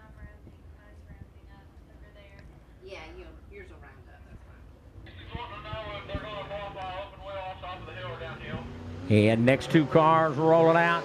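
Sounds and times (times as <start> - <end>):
race car engines rumbling: 4.5 - 11.0
distant public address announcer: 5.1 - 11.0.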